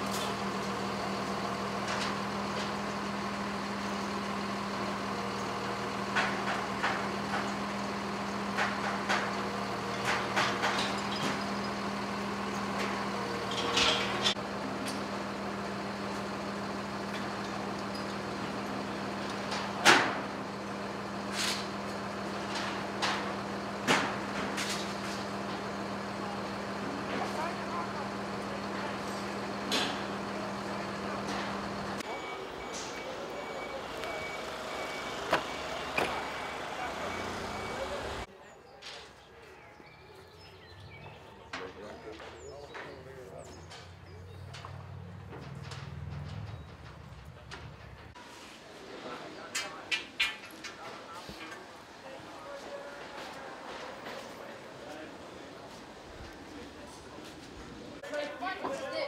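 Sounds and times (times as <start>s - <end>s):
diesel engine running: 0.0s - 38.3s, 40.2s - 49.8s
faint intermittent beep: 32.1s - 37.9s.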